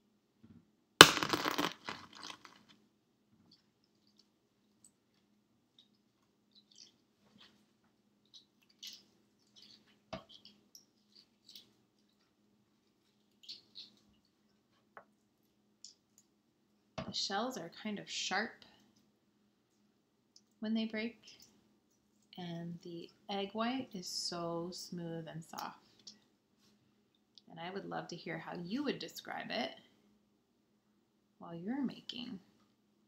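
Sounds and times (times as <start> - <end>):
egg shell cracking: 1.0 - 2.7
egg shell crackling as peeled: 3.5 - 7.6, 8.2 - 14.3.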